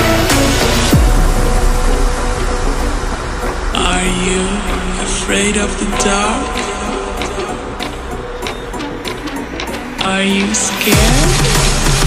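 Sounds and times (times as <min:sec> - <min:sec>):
horror background music: 0:00.0 - 0:12.0
voice-like sound: 0:03.7 - 0:07.9.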